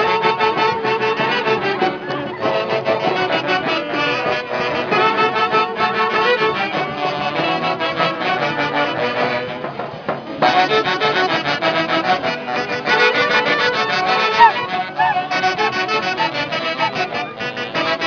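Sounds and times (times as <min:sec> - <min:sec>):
brass band playing dance tune: 0:00.0 - 0:18.0
saxophone: 0:00.0 - 0:18.0.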